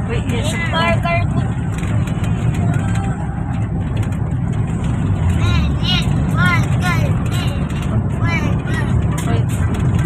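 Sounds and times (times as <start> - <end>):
van engine and road noise: 0.0 - 10.0.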